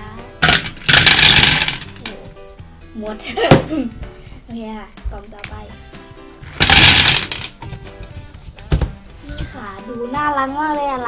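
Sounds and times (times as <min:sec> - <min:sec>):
candies rattling on plastic: 0:00.4 - 0:02.2, 0:06.4 - 0:07.6.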